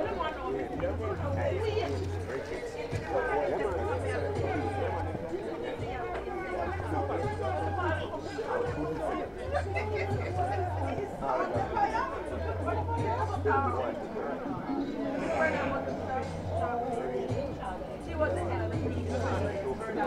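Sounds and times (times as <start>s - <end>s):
many voices chattering: 0.0s - 20.0s.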